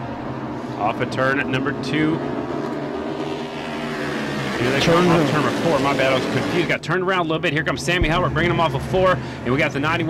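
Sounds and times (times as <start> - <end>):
motorcycle engines droning: 0.0 - 10.0.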